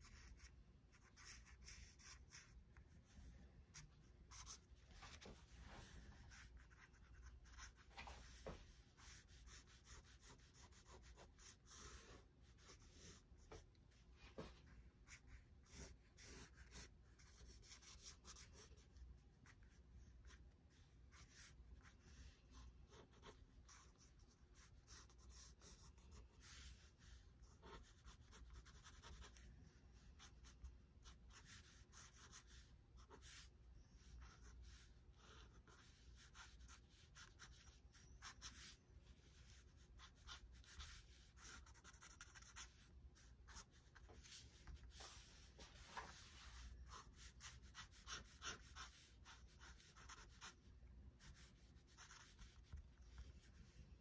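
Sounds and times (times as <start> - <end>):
pen scratching on paper: 0.0 - 13.8, 14.4 - 50.6, 51.2 - 53.8.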